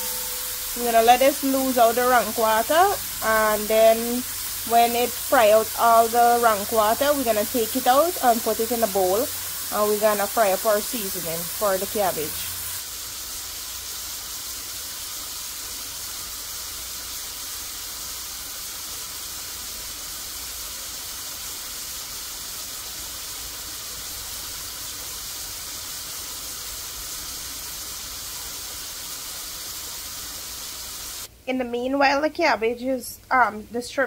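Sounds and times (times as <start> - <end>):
shrimp sizzling in hot oil: 0.0 - 31.3.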